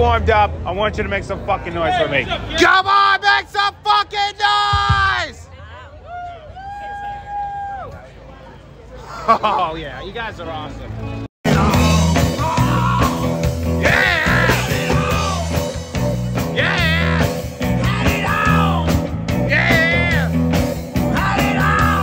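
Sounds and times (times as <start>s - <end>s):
live rock band playing: 11.4s - 22.0s
drummer singing lead vocals: 11.5s - 22.0s.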